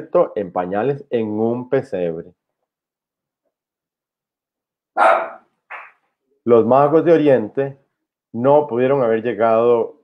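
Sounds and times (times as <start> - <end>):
dog barking: 5.0 - 5.9.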